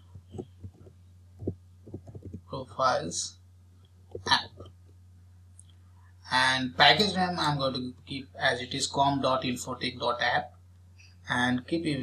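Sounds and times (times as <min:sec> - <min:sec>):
low electrical hum: 0:00.0 - 0:12.0
keyboard keystrokes: 0:00.3 - 0:02.4.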